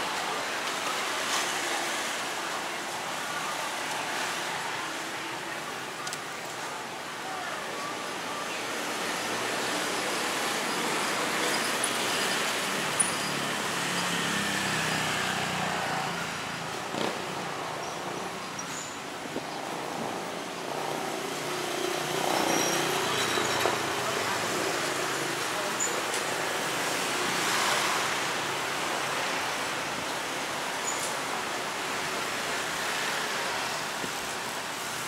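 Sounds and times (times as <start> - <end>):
cars and motorbikes passing: 8.8 - 35.0.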